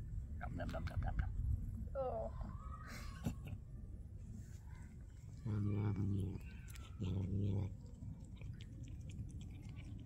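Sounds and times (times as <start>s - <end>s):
cat growling low: 5.4s - 10.0s.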